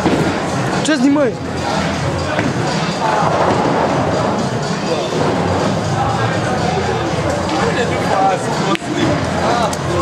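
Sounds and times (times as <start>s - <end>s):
background music: 0.0s - 10.0s
people talking: 0.8s - 10.0s.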